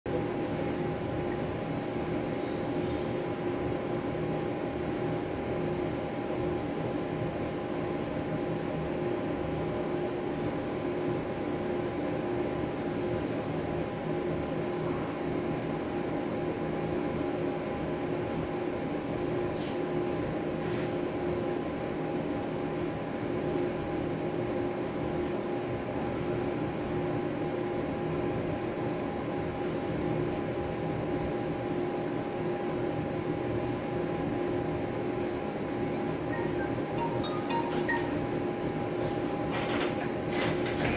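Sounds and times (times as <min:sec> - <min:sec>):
steady mechanical hum: 0:00.1 - 0:40.9.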